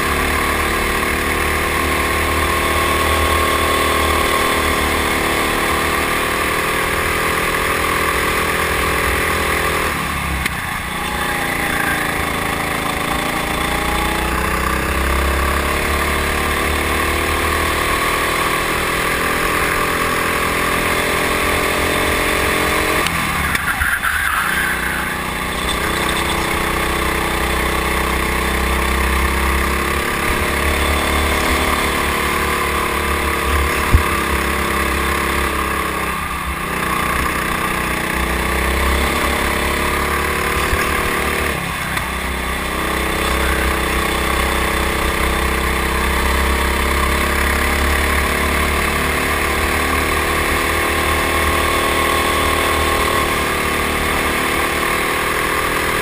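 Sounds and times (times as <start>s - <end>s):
go-kart engine under throttle: 0.0s - 56.0s.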